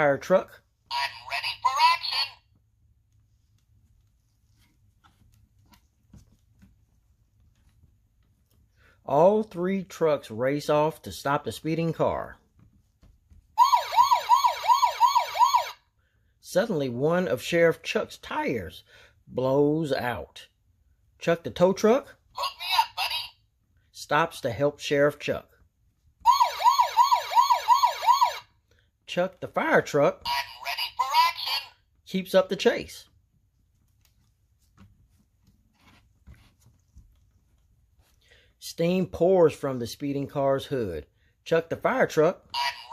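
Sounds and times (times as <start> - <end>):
electronic toy siren wail: 13.6 - 15.8, 26.2 - 28.5.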